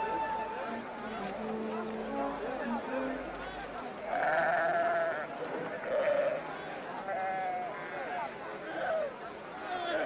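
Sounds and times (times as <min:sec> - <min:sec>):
sheep bleating: 0:04.1 - 0:06.4.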